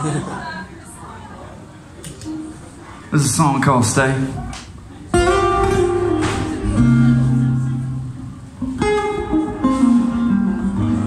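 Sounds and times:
acoustic guitar chords: 5.0s - 11.0s.

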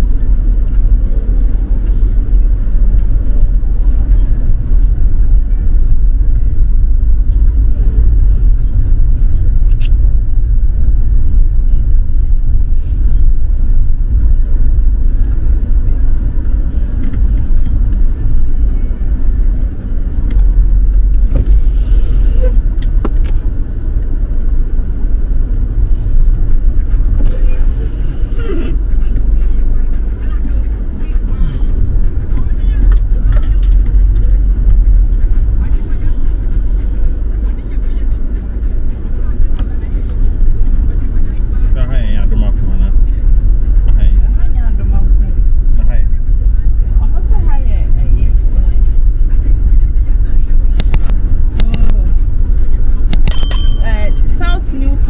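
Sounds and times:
car engine and tyres rumbling: 0.0s - 55.0s.

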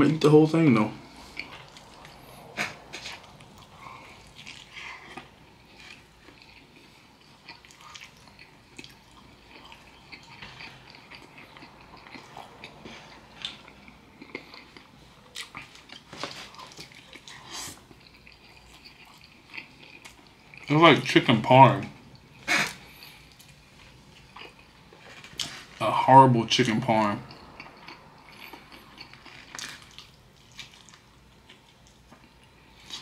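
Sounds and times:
person chewing: 1.0s - 20.7s, 22.1s - 25.8s, 27.2s - 33.0s.

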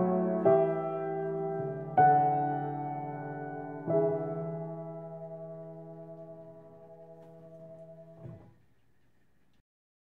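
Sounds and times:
soft keyboard chord: 0.0s - 8.5s.

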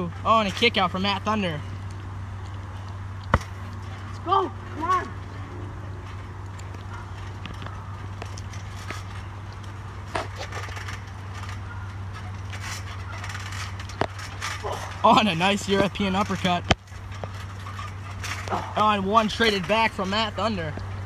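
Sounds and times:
low background hum: 0.0s - 21.0s.

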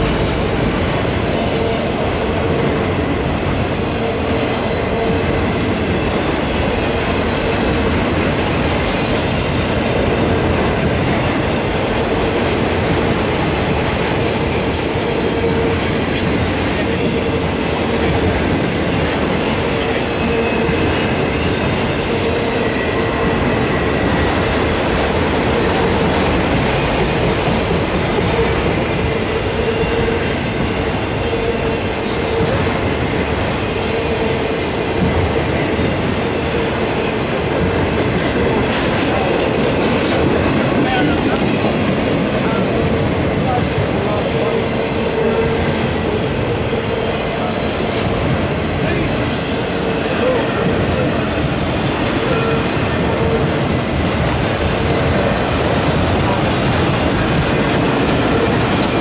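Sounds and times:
steel wheels rolling on rail: 0.0s - 59.0s
faint high squeals: 18.3s - 20.7s.

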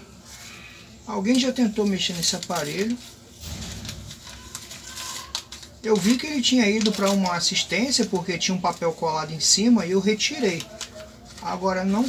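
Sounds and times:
plastic bag rustling: 0.0s - 12.0s.

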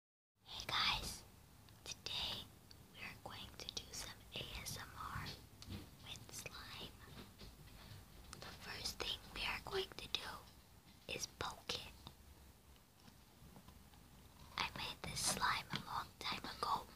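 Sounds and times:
person whispering close: 0.5s - 1.2s, 1.9s - 5.4s, 6.0s - 7.1s, 8.4s - 10.5s, 11.1s - 12.1s, 14.5s - 16.9s.

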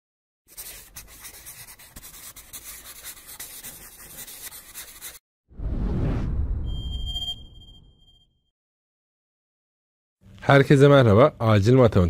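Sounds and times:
pen scribbling on paper: 0.5s - 5.2s.

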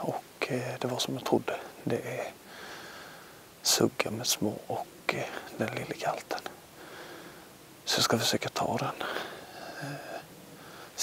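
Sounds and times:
man whispering: 0.0s - 2.4s, 3.6s - 6.7s, 7.8s - 11.0s
man breathing close to microphone: 2.4s - 3.5s, 6.8s - 7.6s, 9.0s - 11.0s.

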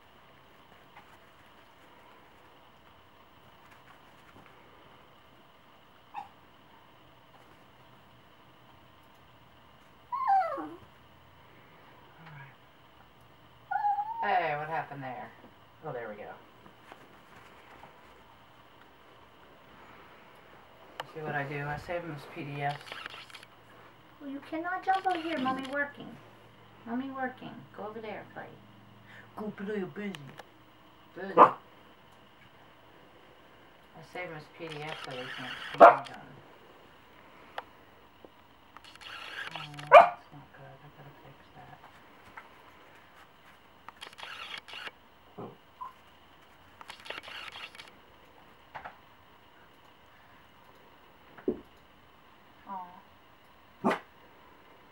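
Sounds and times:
dog whining: 6.1s - 6.4s, 10.1s - 10.9s, 13.7s - 14.3s
small dog barking: 31.4s - 31.6s, 39.9s - 40.3s, 53.8s - 54.1s.

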